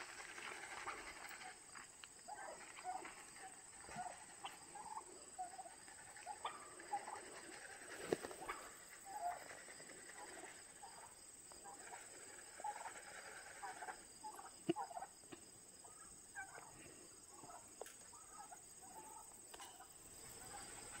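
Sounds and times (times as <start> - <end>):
turkeys making short calls: 0.0 - 21.0.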